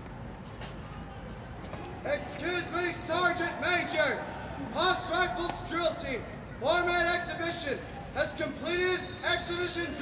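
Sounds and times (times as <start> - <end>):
outdoor background noise: 0.0 - 10.0
person shouting drill report: 2.2 - 10.0.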